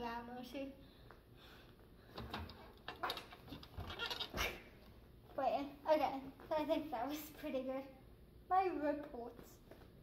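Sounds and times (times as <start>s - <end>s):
knocks and thumps on gymnastics bar: 2.1s - 4.6s.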